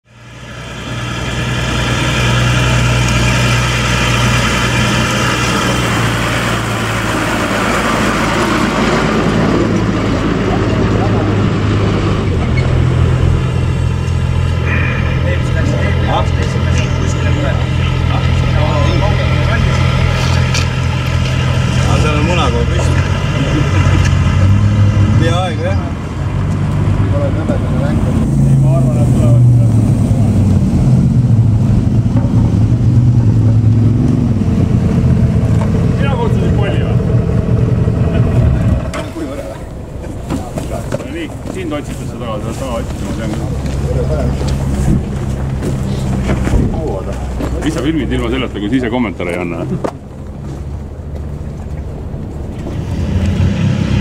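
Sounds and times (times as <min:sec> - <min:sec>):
vehicle engine idling: 0:00.0 - 0:53.3
people talking: 0:10.3 - 0:12.5, 0:14.6 - 0:20.5, 0:21.7 - 0:26.0, 0:27.0 - 0:30.2, 0:35.9 - 0:37.2, 0:38.1 - 0:45.1, 0:45.7 - 0:50.0.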